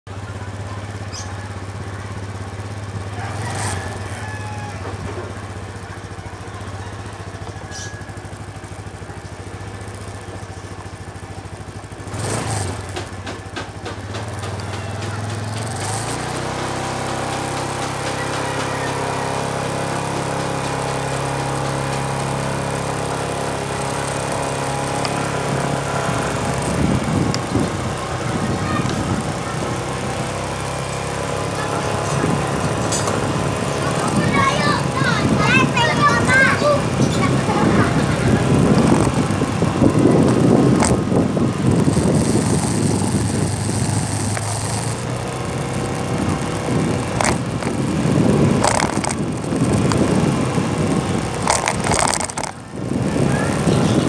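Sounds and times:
small motorcycle engine: 0:00.1 - 0:54.0.

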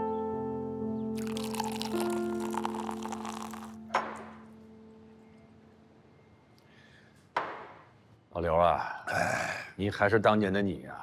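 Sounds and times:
soft piano chords music: 0:00.0 - 0:06.5
drink being poured: 0:01.2 - 0:04.2
sharp knock: 0:07.4 - 0:07.9.

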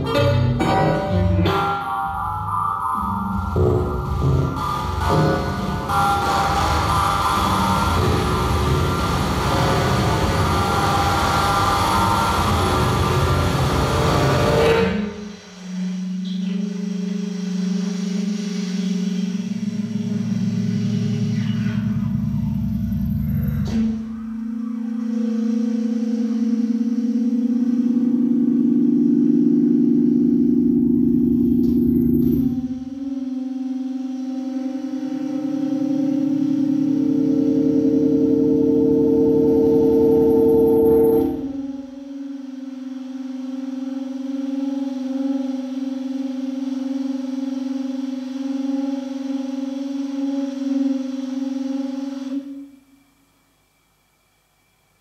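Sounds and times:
pulsing electronic drone: 0:00.0 - 0:53.1.

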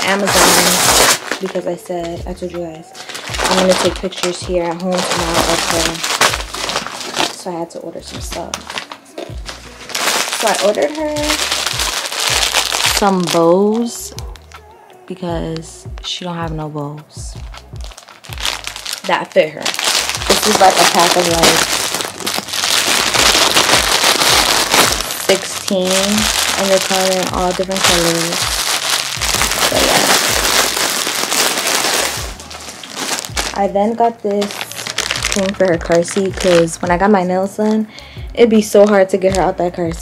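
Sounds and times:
background music with beat: 0:00.0 - 0:07.3, 0:07.9 - 0:19.2, 0:19.8 - 0:34.2, 0:34.8 - 0:40.0
plastic bag crinkling: 0:00.0 - 0:14.0, 0:17.8 - 0:37.8, 0:38.6 - 0:39.4.

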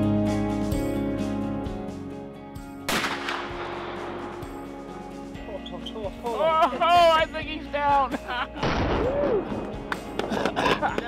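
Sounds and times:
revolver shot: 0:02.9 - 0:03.9.

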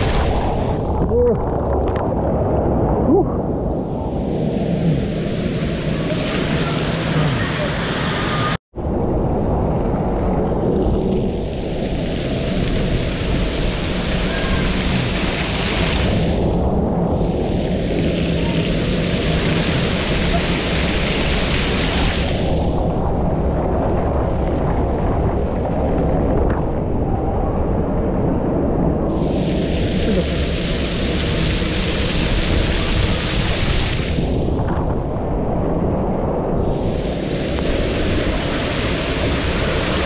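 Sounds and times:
microphone rumble: 0:00.0 - 0:40.0
water rushing down a slide: 0:05.4 - 0:08.6, 0:10.6 - 0:16.5, 0:17.3 - 0:22.8, 0:29.2 - 0:34.6, 0:36.7 - 0:40.0.

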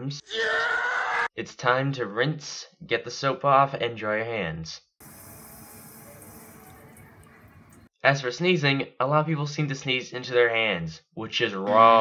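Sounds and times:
water running from tap: 0:05.0 - 0:07.9.

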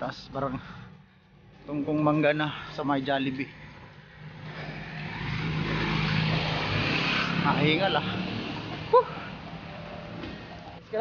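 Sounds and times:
car driving past: 0:03.4 - 0:10.8.

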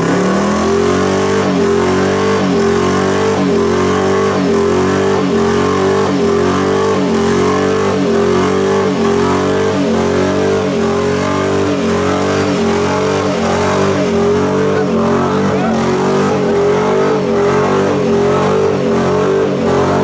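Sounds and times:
truck engine at high revs: 0:00.0 - 0:20.0.

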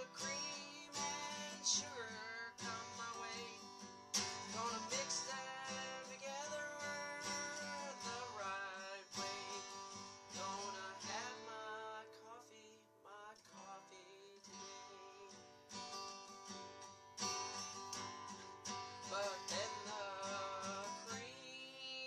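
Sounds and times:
man singing: 0:00.0 - 0:15.6, 0:19.0 - 0:22.0
acoustic guitar strumming: 0:00.0 - 0:22.0.

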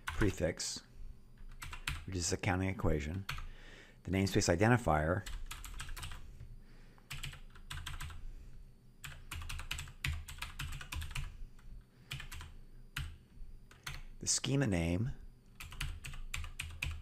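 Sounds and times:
typing on a computer keyboard: 0:01.4 - 0:02.1, 0:05.2 - 0:06.2, 0:07.1 - 0:08.2, 0:09.0 - 0:14.1, 0:15.5 - 0:17.0.

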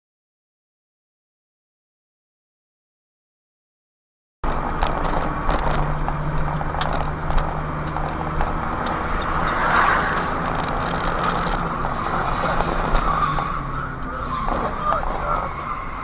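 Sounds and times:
car engine and tyre road noise: 0:04.4 - 0:16.0
tyre skid noise: 0:04.6 - 0:16.0.

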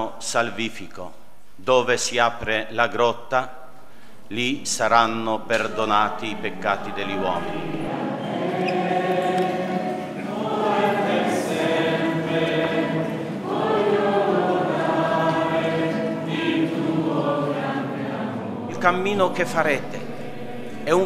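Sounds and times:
choir singing: 0:05.4 - 0:21.0.

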